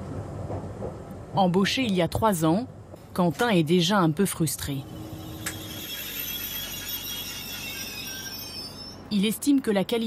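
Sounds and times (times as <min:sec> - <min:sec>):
train rumbling: 0:00.0 - 0:10.0
high-pitched metallic squeal: 0:04.7 - 0:09.5.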